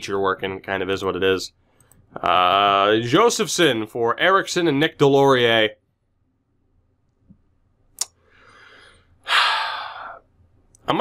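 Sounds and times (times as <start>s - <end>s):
man sighing: 8.4s - 10.2s.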